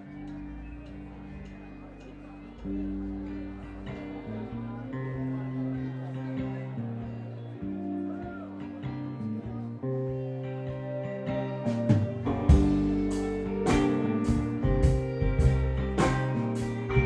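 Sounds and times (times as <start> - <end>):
electric guitar notes: 0.0 - 17.0
live band playing: 10.1 - 17.0.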